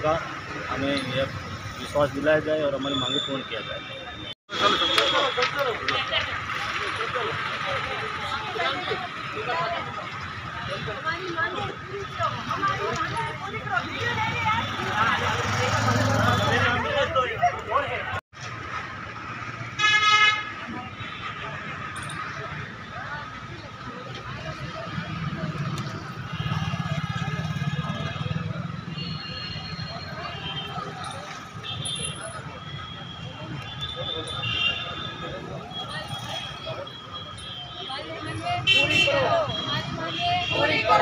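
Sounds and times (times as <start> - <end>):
street background noise: 0.0 - 41.0
group shouting a protest slogan: 38.8 - 41.0.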